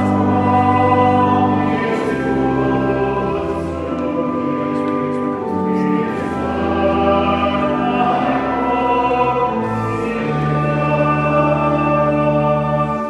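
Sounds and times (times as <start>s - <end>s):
congregation singing a hymn: 0.0s - 13.0s
long held low chords: 0.0s - 13.0s.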